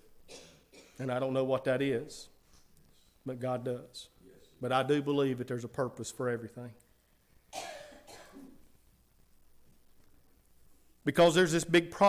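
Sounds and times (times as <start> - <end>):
person coughing: 0.3 - 1.1, 7.5 - 8.6.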